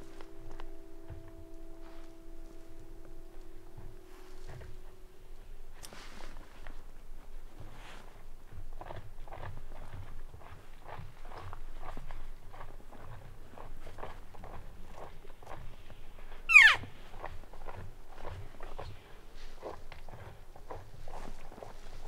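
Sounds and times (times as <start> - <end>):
short call sliding down in pitch: 16.5 - 16.8.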